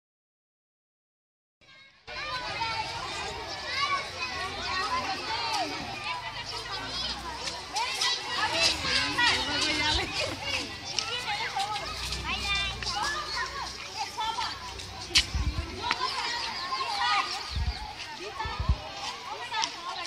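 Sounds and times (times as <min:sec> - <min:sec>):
children talking and calling out: 0:01.6 - 0:20.0.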